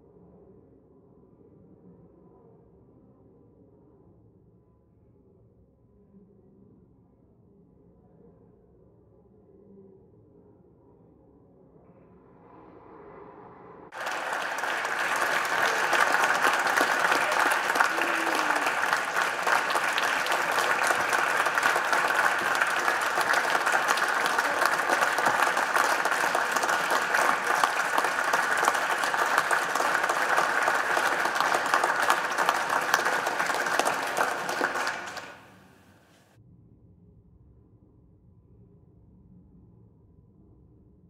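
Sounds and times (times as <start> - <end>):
crowd applauding in a hall: 13.9 - 35.6.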